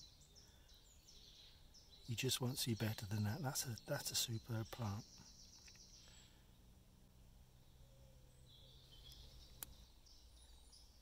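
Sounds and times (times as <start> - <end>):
faint distant birdsong: 0.0 - 11.0.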